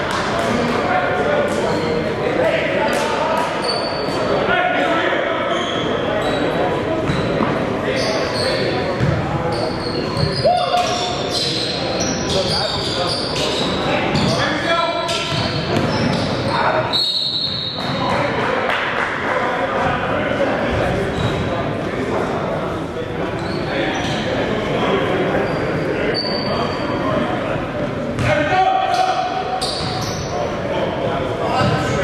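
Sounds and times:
players' voices: 0.0s - 32.0s
sneaker squeaks: 2.9s - 4.4s, 5.4s - 18.2s, 20.7s - 21.6s, 23.3s - 27.2s, 28.2s - 30.5s, 31.5s - 32.0s
basketball bouncing on court: 9.0s - 9.3s, 15.1s - 16.4s, 28.2s - 28.4s, 31.6s - 32.0s.

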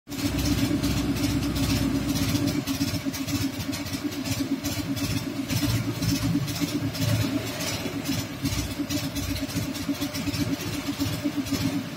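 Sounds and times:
engine running with even throb: 0.1s - 11.9s.

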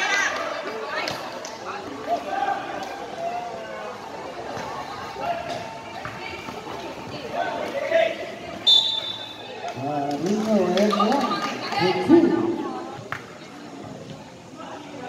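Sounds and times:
players and spectators calling out: 0.0s - 15.0s
referee's whistle: 8.6s - 9.5s.

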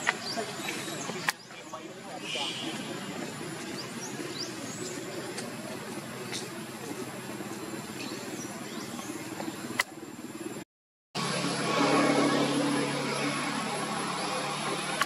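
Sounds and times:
murmur of voices: 0.0s - 10.6s.

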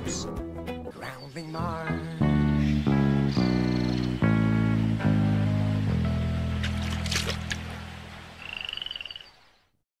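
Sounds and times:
low music: 0.0s - 8.4s.

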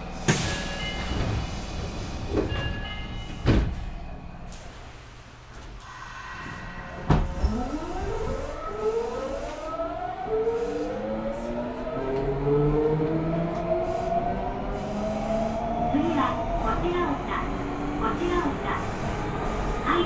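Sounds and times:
train knocks starting: 0.2s - 4.0s
train inverter tones rising: 5.8s - 20.0s.

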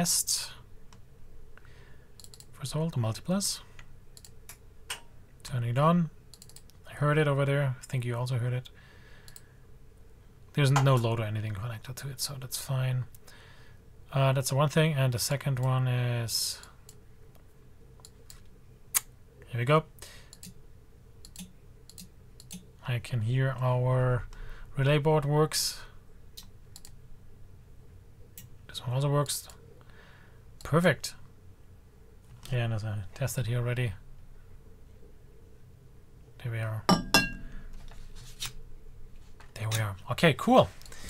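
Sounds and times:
faint steady hum: 0.0s - 41.0s
computer mouse clicks: 2.2s - 2.5s, 4.2s - 4.6s, 6.3s - 6.8s, 9.3s - 9.5s, 20.3s - 20.6s, 21.2s - 22.7s, 26.4s - 27.0s
faint click: 9.3s - 9.5s
sharp metallic clink: 36.9s - 37.6s.

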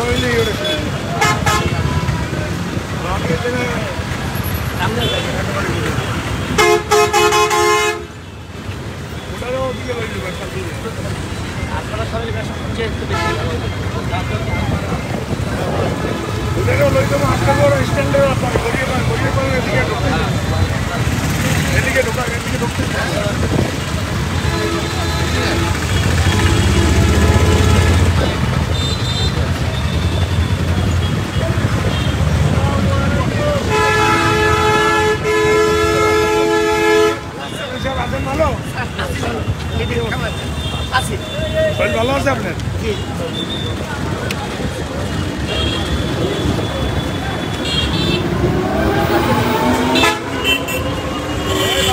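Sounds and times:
vehicle horns honking: 0.0s - 2.2s, 4.4s - 8.4s, 12.5s - 15.2s, 24.1s - 32.3s, 33.6s - 43.8s, 45.0s - 51.9s
traffic noise: 0.0s - 51.9s
voices: 0.0s - 51.9s.

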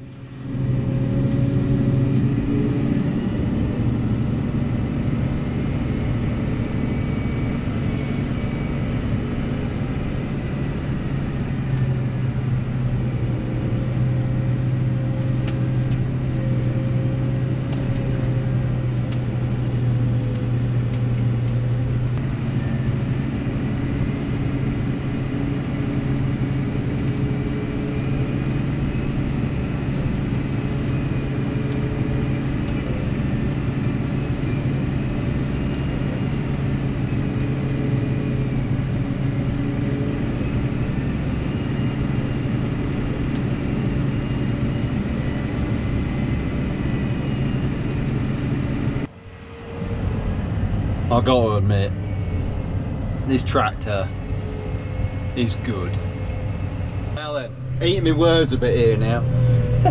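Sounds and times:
tractor diesel engine running: 0.0s - 59.9s
faint high whine: 2.6s - 59.9s.

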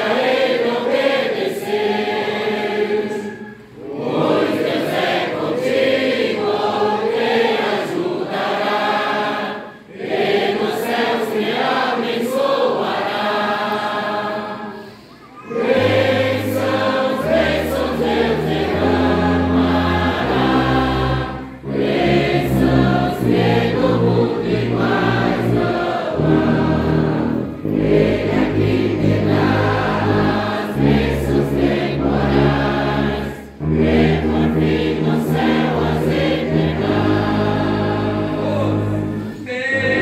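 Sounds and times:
congregation singing a hymn: 0.0s - 40.0s
brass and saxophone chords: 15.4s - 40.0s
tuba bass notes: 15.5s - 40.0s.

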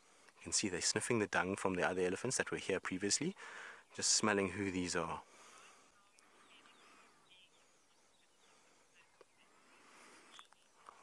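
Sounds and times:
faint bird calls: 5.3s - 11.0s.

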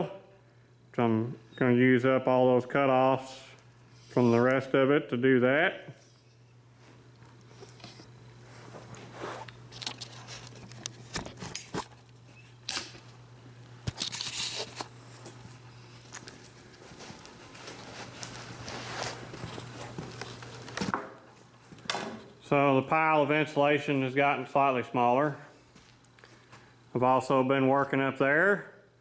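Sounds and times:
low electrical hum: 0.0s - 29.0s.

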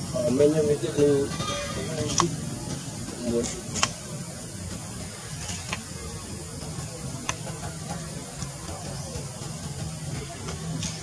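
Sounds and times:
short wavering pitched cries: 1.2s - 2.2s.

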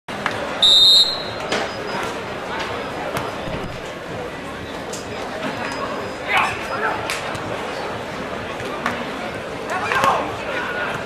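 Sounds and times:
crowd chatter: 0.1s - 11.0s
whistle blast: 0.6s - 1.5s.

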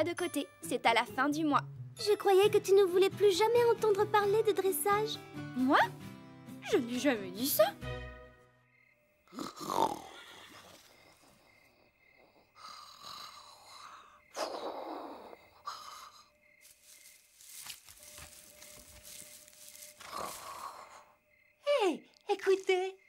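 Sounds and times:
cartoon horses snoring: 9.3s - 16.4s, 20.0s - 21.2s.

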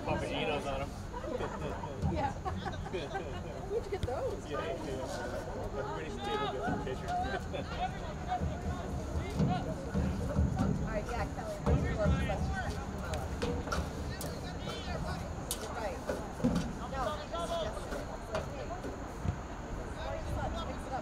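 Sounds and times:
people talking indistinctly: 0.0s - 21.0s.

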